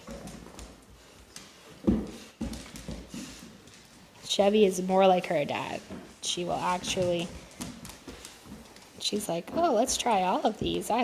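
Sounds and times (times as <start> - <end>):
dog claws scrabbling on wood floor: 5.8 - 9.6.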